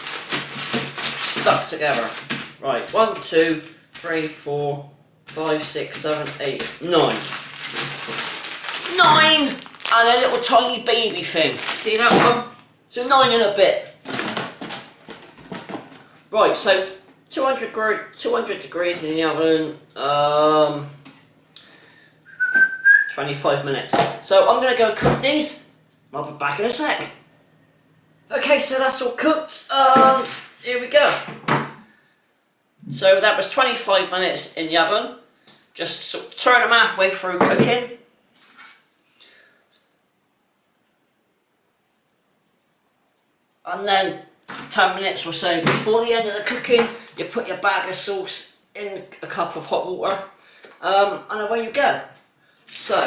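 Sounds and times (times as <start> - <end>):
plastic bag crinkling: 0.0 - 2.6, 5.3 - 12.4
soft food handling crackles: 5.4 - 12.1
cardboard box rustling: 7.0 - 10.3.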